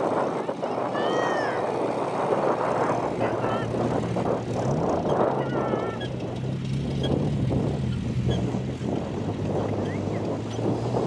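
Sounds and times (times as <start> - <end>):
broad rushing noise: 0.0 - 11.0
car engine running: 1.8 - 11.0.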